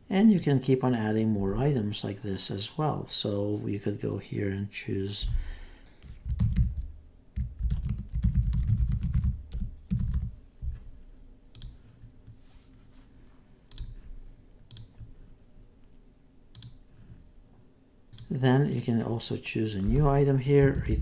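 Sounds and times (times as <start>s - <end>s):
typing on computer keyboard: 6.0s - 10.3s
mouse clicks: 13.7s - 14.0s, 14.7s - 15.0s, 16.5s - 16.8s.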